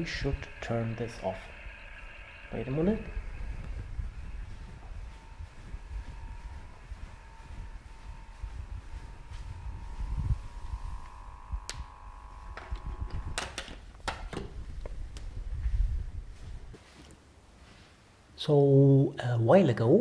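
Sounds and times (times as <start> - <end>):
electrical whine: 0.0 - 16.8
low handling rumble: 0.0 - 16.8
sharp clicks and knocks: 12.5 - 15.3.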